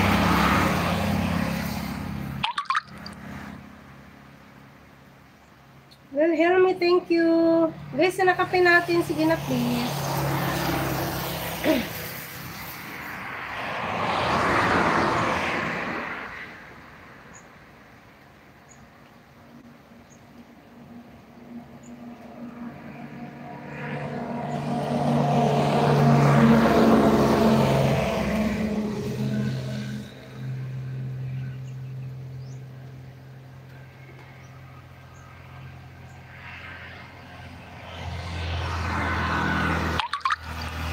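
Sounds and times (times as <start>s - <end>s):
motorcycle passing: 0.0s - 4.3s, 7.5s - 16.3s, 21.9s - 40.9s.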